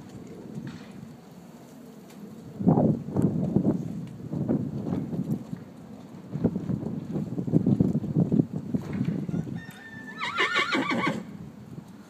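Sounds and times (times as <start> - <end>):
hooves thudding on soft ground: 0.0 - 10.0, 11.4 - 12.0
horse whinnying: 9.3 - 11.3.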